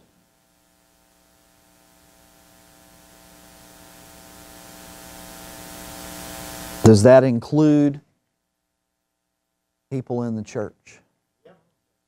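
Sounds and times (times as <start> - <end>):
sound system hiss: 0.0 - 7.8
electrical mains hum: 0.0 - 12.0
man speaking: 6.8 - 8.1, 9.9 - 11.0.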